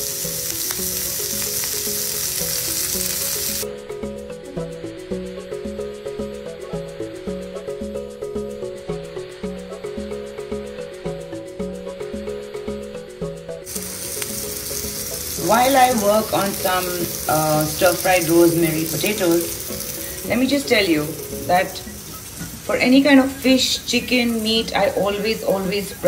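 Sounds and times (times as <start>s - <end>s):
vegetables sizzling in hot oil: 0.0s - 3.7s, 13.7s - 26.0s
background music with bass line: 0.0s - 25.8s.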